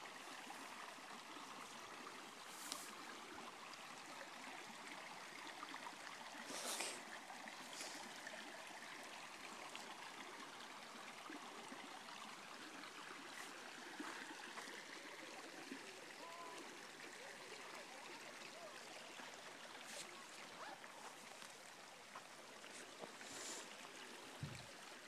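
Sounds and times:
creek running over rocks: 0.0 - 25.0.

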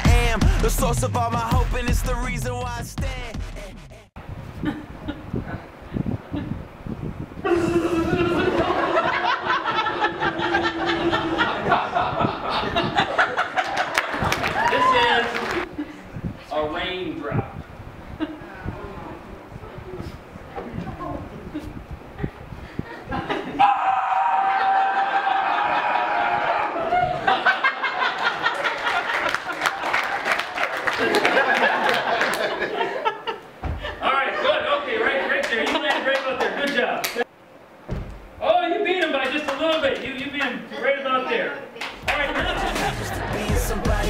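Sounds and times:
person crying out: 7.4 - 8.4, 23.6 - 25.0
audience laughter: 7.5 - 14.5, 25.0 - 36.6, 42.0 - 44.0
scattered clapping: 13.6 - 15.7, 28.2 - 32.6, 35.4 - 37.2, 39.0 - 40.6, 41.8 - 43.2
soft thumps: 33.6 - 34.0, 37.8 - 38.4.

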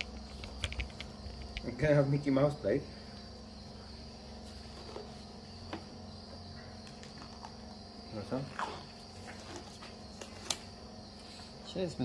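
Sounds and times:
faint high-pitched hum: 0.0 - 12.0.

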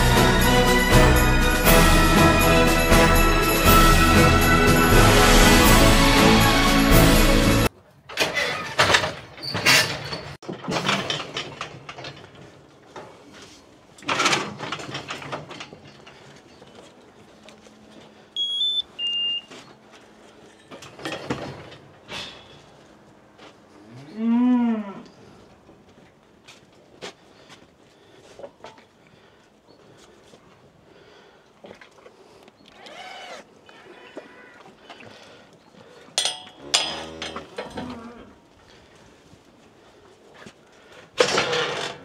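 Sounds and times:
steel cattle crush rattling: 8.1 - 13.2, 14.0 - 16.8, 36.2 - 38.0, 41.1 - 42.0
tag reader electronic beeps: 18.4 - 19.5.

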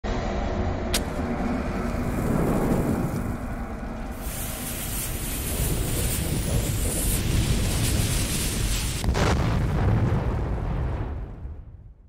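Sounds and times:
low rumble: 0.1 - 12.0
bomb fuse hissing: 1.0 - 9.3.

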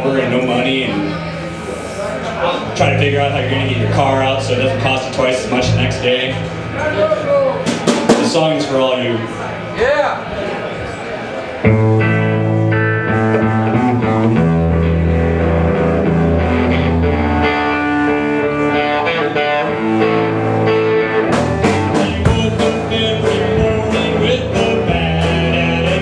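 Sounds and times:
guitar chords: 0.0 - 9.4, 11.6 - 26.0
low bass notes: 0.0 - 9.6, 11.7 - 26.0
drum hits: 7.6 - 8.6.

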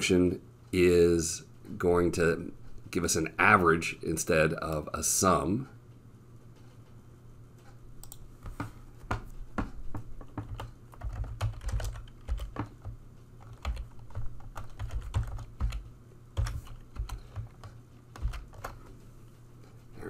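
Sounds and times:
typing on computer keyboard: 8.0 - 18.8.

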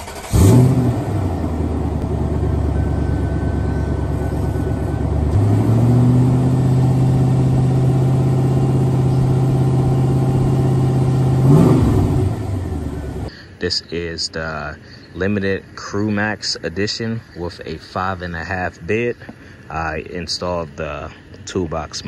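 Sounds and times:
car engine starting and idling: 0.0 - 13.3
engine revving: 0.0 - 13.3.

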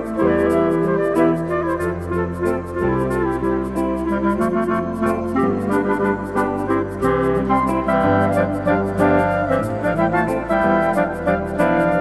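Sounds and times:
flute and clarinet melody: 0.0 - 12.0.

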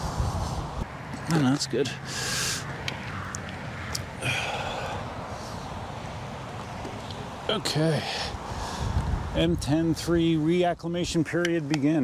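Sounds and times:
wind and road noise: 0.0 - 12.0
short breathy rush: 2.0 - 2.8, 7.9 - 9.2.

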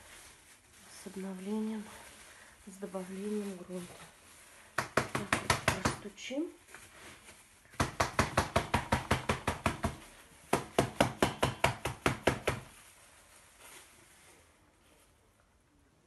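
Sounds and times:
hand tapping plastic pot: 4.8 - 6.0, 7.7 - 12.7.

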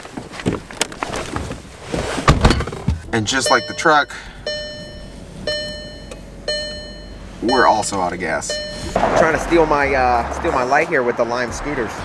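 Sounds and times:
dashboard warning chime: 3.2 - 9.0.

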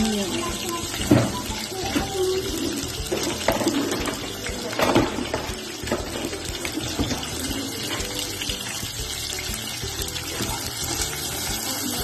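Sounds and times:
onions sizzling in a pot: 0.0 - 12.0.

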